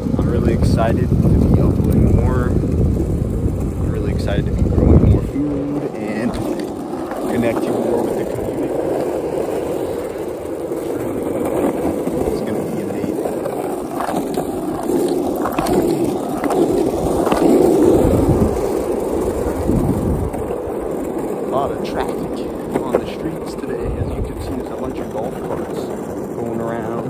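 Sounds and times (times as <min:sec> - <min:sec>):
longboard wheels rolling on asphalt: 0:00.0 - 0:27.0.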